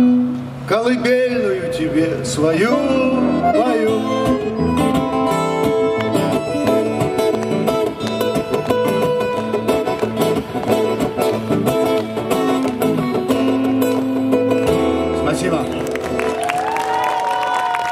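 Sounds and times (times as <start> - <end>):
acoustic guitars: 0.0 - 17.7
accordion: 2.5 - 15.9.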